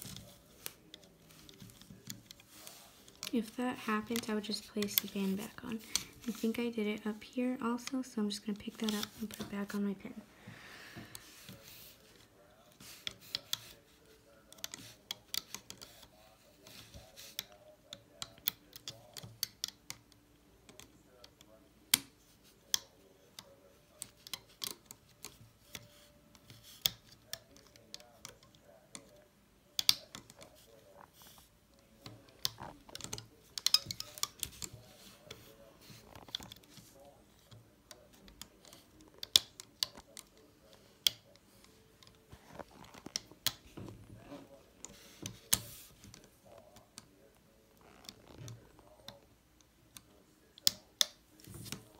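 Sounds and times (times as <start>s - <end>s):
hook clicking on plastic pegs: 14.5s - 16.1s, 17.2s - 29.2s, 29.8s - 31.4s, 32.0s - 41.4s.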